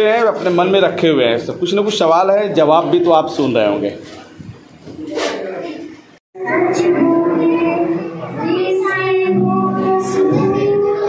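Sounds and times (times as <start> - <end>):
girl singing into microphone: 6.4 - 11.0.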